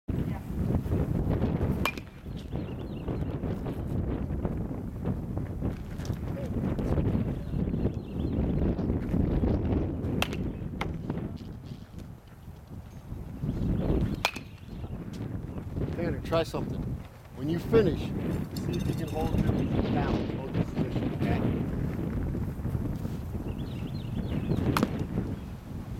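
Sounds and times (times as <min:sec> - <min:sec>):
metal bat hitting balls: 0:01.8 - 0:02.2, 0:10.2 - 0:11.0, 0:14.1 - 0:14.6, 0:24.7 - 0:25.1.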